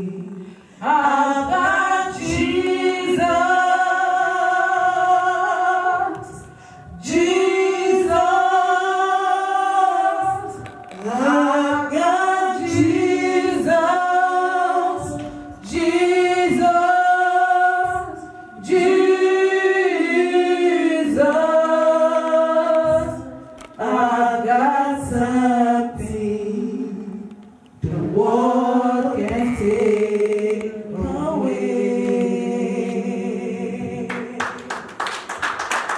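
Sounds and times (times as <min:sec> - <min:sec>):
women's gospel choir singing: 0:00.0 - 0:35.9.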